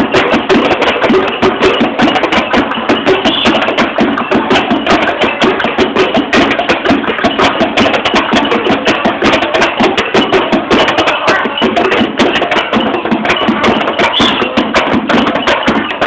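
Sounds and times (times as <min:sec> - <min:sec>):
hand percussion: 0:00.0 - 0:16.0
plastic bucket drumming: 0:02.6 - 0:04.5.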